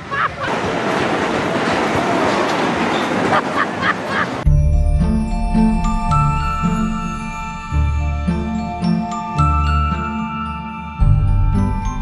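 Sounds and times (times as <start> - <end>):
fairground ride cars rattling: 0.0 - 4.5.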